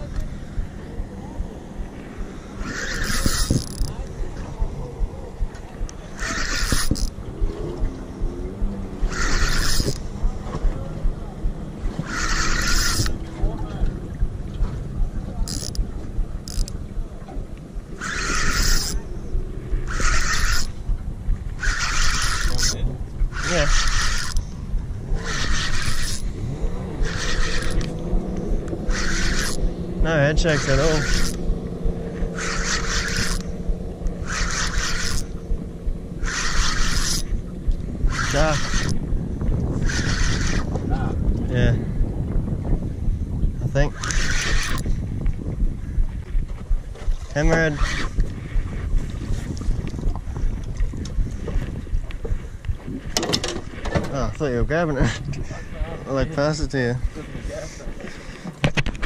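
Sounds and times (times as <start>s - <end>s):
wind and water rumble: 0.0s - 59.0s
fishing reel winding: 2.5s - 4.0s, 6.1s - 7.2s, 9.0s - 10.1s, 12.0s - 13.2s, 15.4s - 16.8s, 18.0s - 19.1s, 19.9s - 20.8s, 21.6s - 24.5s, 25.2s - 26.4s, 27.0s - 29.7s, 30.4s - 31.6s, 32.3s - 35.4s, 36.2s - 37.4s, 38.1s - 39.0s, 39.8s - 40.8s, 43.9s - 44.9s, 47.7s - 48.3s.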